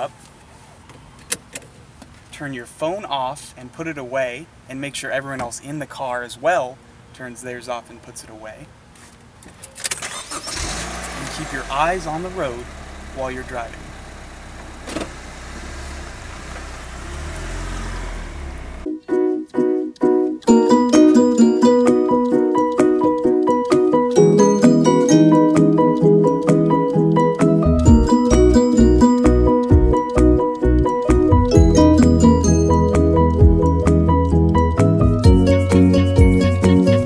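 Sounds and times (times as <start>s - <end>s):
car engine idling: 10.2s - 18.9s.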